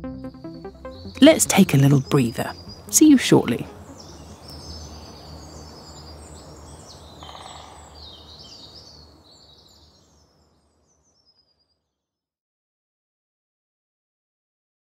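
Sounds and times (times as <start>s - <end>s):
birds chirping: 0.3s - 11.9s.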